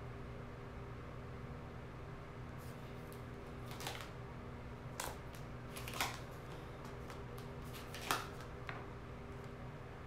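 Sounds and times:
faint low hum with tones: 0:00.0 - 0:10.0.

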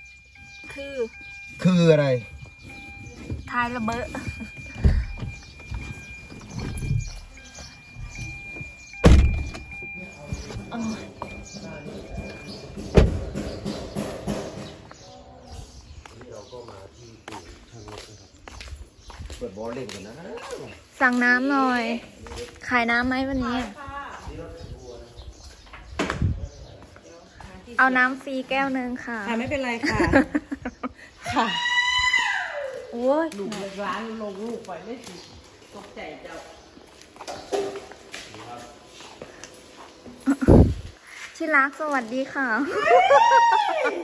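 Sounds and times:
car door thudding shut: 0:09.0 - 0:09.7, 0:12.8 - 0:14.6.

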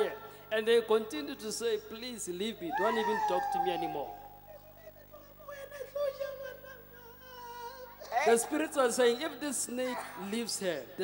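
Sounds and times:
woman moaning into a microphone: 0:04.7 - 0:08.4.

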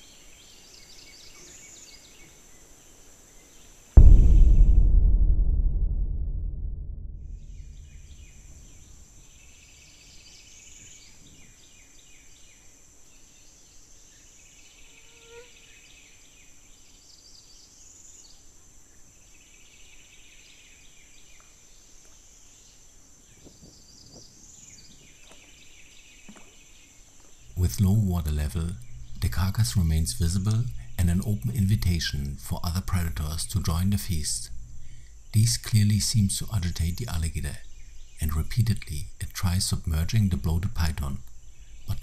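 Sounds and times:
low rumble: 0:04.0 - 0:09.7, 0:27.5 - 0:42.0.

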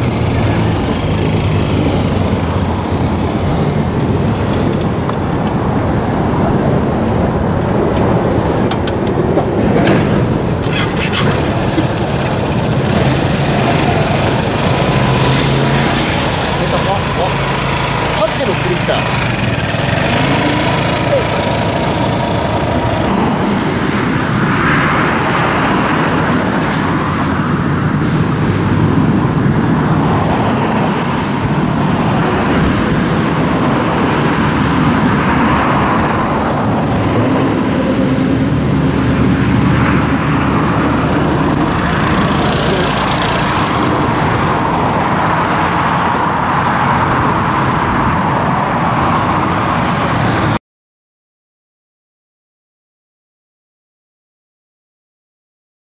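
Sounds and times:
scooter engine running: 0:00.0 - 0:06.4, 0:07.1 - 0:24.4, 0:36.0 - 0:47.1.

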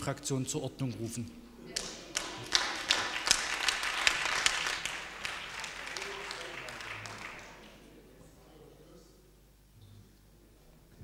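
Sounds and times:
crowd applauding: 0:01.7 - 0:08.0.

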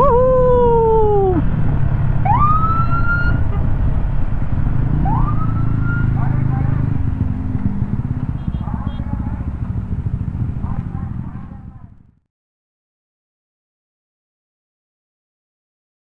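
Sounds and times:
scooter engine rumble: 0:00.0 - 0:12.2.

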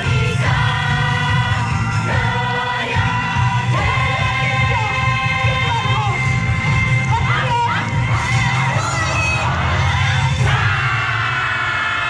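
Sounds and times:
crowd shouting and cheering: 0:00.0 - 0:12.0
loud dance music with bass: 0:00.0 - 0:12.0.

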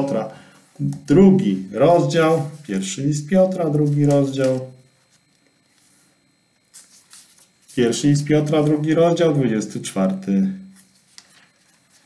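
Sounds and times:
thin pages rustling: 0:03.5 - 0:08.0, 0:10.0 - 0:12.0.

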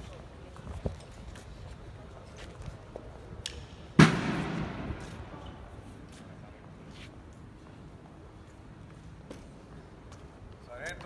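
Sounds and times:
loud bang with echo: 0:04.0 - 0:05.3.

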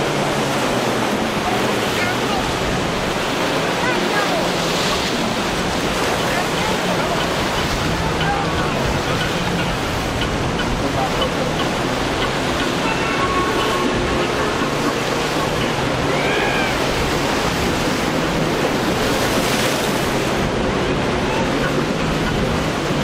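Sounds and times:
boat engine hum: 0:00.0 - 0:23.0
surf and rough water: 0:00.0 - 0:23.0.

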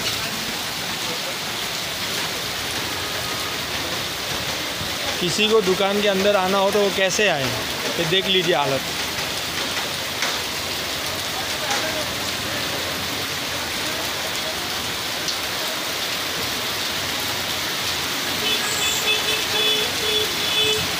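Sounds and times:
heavy rain on water: 0:00.0 - 0:20.9.

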